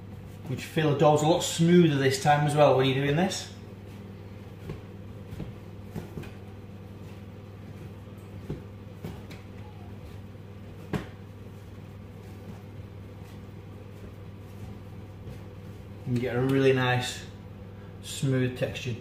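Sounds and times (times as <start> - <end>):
steady low hum: 0.0 - 19.0
dough thumping on a worktop: 4.4 - 15.7.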